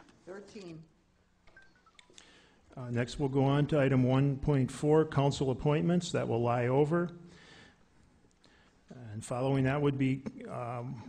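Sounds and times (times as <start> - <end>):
short electronic beeps: 1.5 - 2.2.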